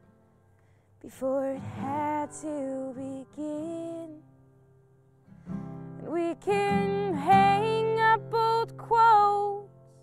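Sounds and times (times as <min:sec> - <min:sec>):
woman singing: 0:01.0 - 0:04.3, 0:06.0 - 0:09.8
acoustic guitar strumming: 0:01.4 - 0:10.0.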